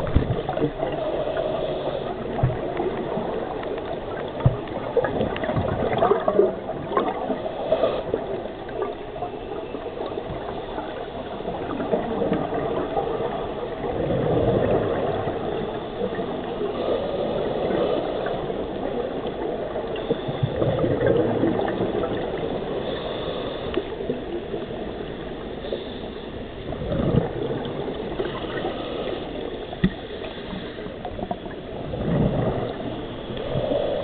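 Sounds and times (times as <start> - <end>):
water bubbling and gurgling: 0.0 - 34.0.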